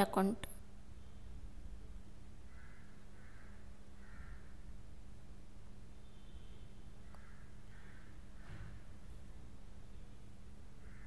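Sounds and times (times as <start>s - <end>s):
faint bird calls: 2.5s - 4.6s, 6.0s - 8.9s, 10.8s - 11.0s.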